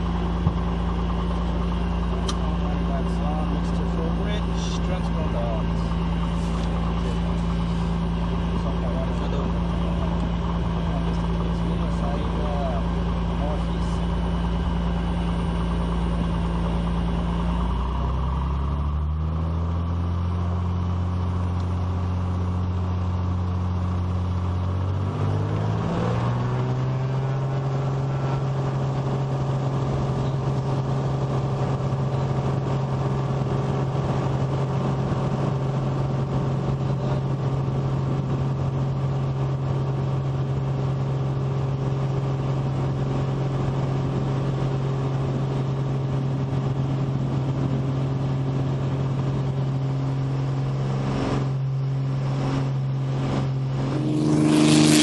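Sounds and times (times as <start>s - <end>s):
propeller aircraft engine: 0.0s - 55.0s.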